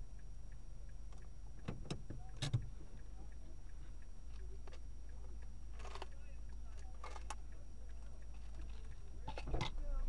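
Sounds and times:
clicks and knocks inside car: 1.1 - 2.9.

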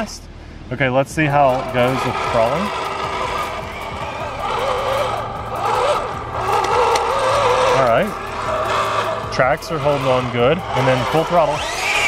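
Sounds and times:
electric motors whining: 1.2 - 12.0.

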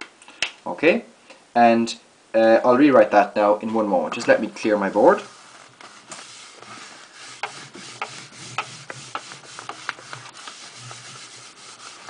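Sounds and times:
paper rustling and rubbing: 4.2 - 12.0.

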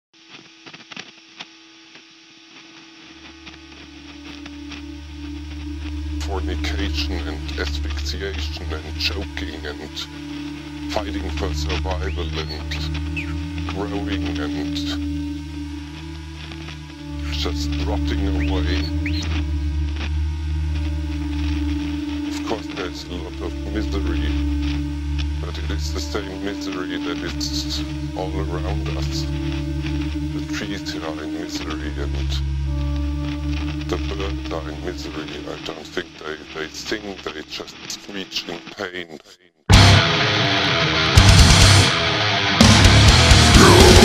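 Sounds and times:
electrical hum: 0.2 - 38.2
crackles and clicks: 0.2 - 38.8
deep low drone: 3.4 - 36.9, 42.8 - 44.0.

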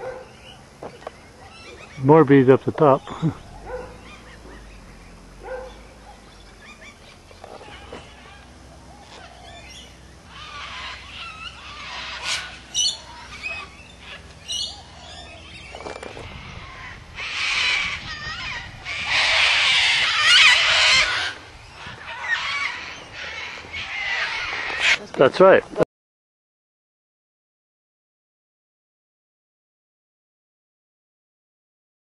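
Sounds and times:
harsh bird squawking: 1.3 - 25.6.

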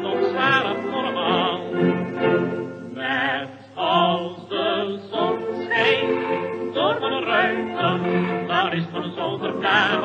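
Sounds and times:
singing with vibrato over accompaniment: 0.0 - 10.0.

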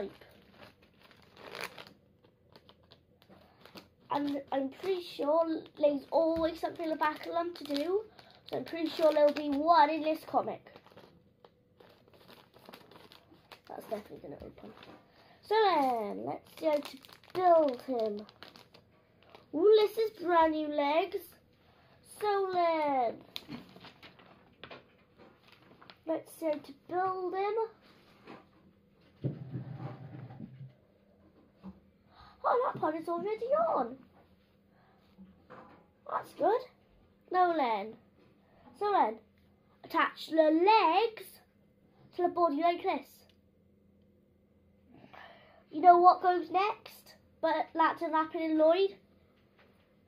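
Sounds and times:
magazine pages turning: 0.0 - 19.9, 22.5 - 26.0
plastic bag crinkling: 0.0 - 20.2, 23.1 - 26.1
scissors cutting plastic: 5.7 - 10.2.

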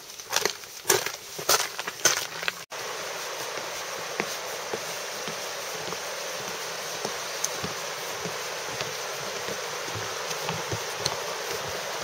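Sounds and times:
background hiss: 0.0 - 12.0
footsteps on wooden boardwalk: 0.0 - 12.0.

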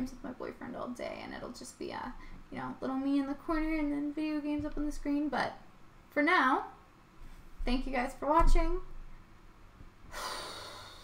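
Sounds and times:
person's sharp breath out: 10.1 - 11.0.

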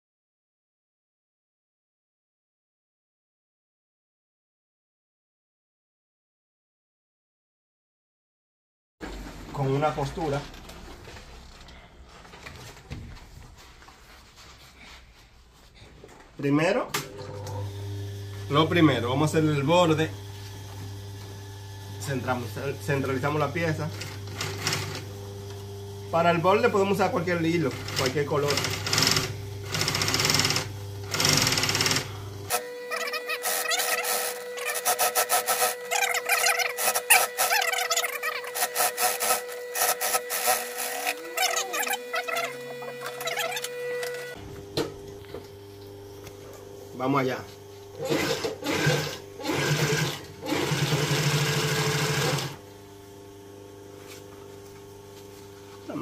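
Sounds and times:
sewing machine motor humming: 17.2 - 44.4, 47.9 - 52.6
sewing machine stitching: 23.7 - 25.1, 27.4 - 44.4, 48.0 - 52.6.

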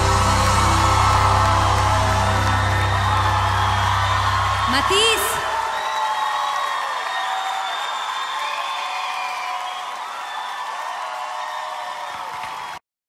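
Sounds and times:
audience cheering and applauding: 0.0 - 12.8
shouts and whoops: 0.0 - 12.8.

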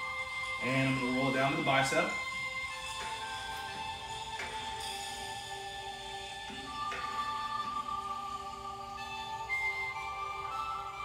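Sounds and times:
calm instrumental music: 0.0 - 11.0.

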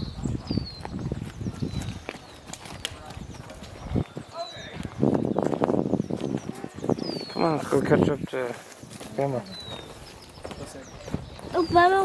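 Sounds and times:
footsteps on wood-chip mulch: 0.7 - 12.0.

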